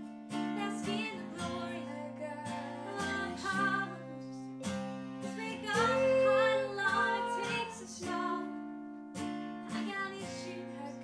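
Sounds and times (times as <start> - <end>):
acoustic guitar strumming chords: 0.0 - 11.0
woman singing: 0.4 - 4.6, 5.2 - 8.8, 9.6 - 11.0.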